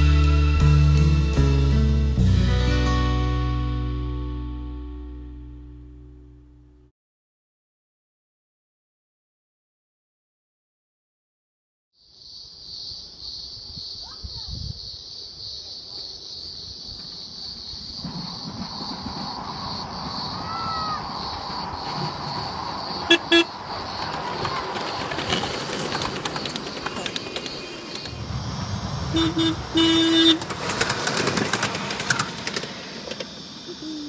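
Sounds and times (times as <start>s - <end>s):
miniature train running: 18.0s - 33.8s
miniature train horn toots: 23.1s - 23.5s, 29.1s - 30.6s.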